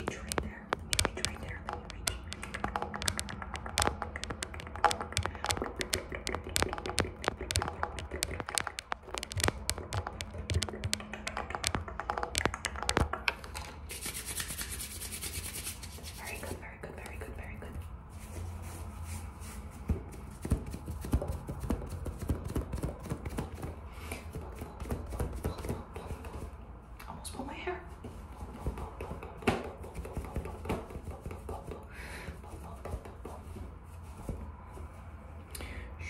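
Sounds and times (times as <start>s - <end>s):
scratching on knit fabric: 0.0s - 11.8s, 13.9s - 16.6s
fingernails tapping: 0.0s - 13.7s.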